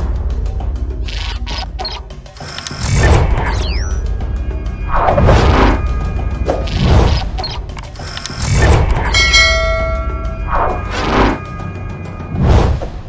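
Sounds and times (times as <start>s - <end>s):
bright ringing chime: 9.1s - 10.7s.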